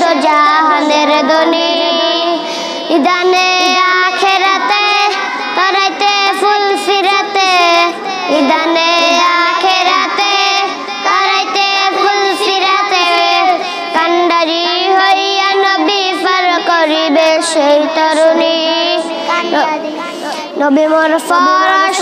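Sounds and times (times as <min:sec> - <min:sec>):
boys singing unaccompanied: 0:00.0 - 0:22.0.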